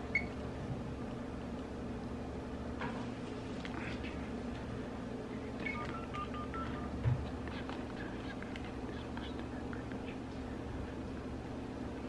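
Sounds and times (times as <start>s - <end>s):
telephone keypad tones: 5.6s - 7.0s.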